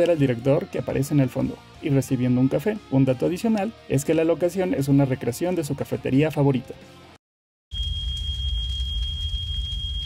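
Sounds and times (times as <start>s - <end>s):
high-pitched whine: 7.7s - 10.0s.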